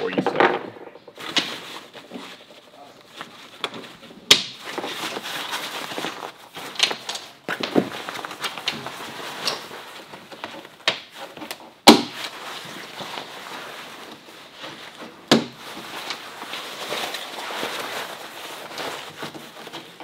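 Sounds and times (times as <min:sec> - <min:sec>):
fabric rustling: 0:01.0 - 0:20.0.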